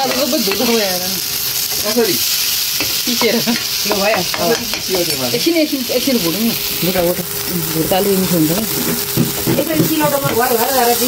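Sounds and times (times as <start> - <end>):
paste sizzling in oil: 0.0 - 11.0
steel spoon stirring in wok: 8.4 - 11.0.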